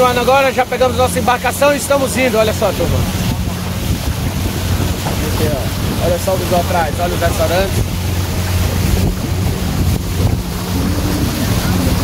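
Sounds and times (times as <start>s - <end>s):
motorboat engine running: 0.0s - 12.0s
water rushing past hull: 0.0s - 12.0s
wind buffeting microphone: 0.0s - 12.0s.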